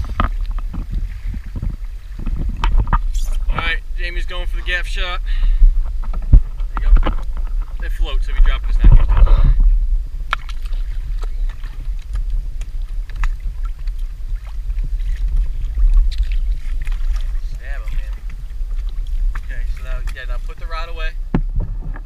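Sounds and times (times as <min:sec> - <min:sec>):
wind and water rumble: 0:00.0 - 0:22.0.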